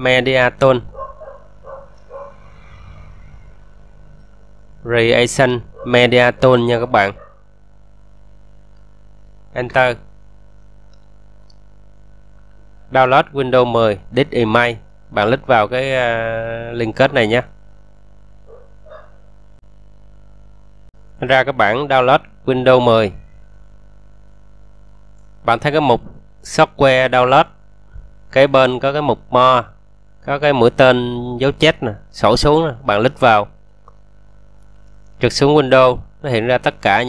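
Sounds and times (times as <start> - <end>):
low room hum: 0.0 - 37.0.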